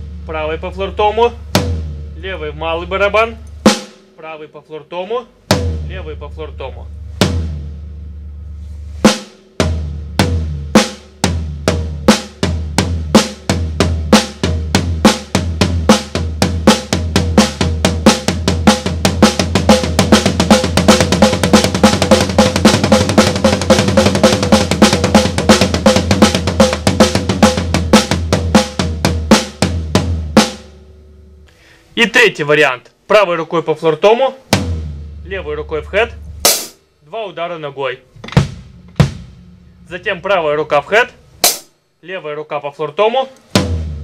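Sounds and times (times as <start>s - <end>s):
snare and floor tom strokes: 1.2s - 2.2s, 7.0s - 30.9s, 36.3s - 36.8s, 38.2s - 40.1s, 41.4s - 41.8s, 43.4s - 44.0s.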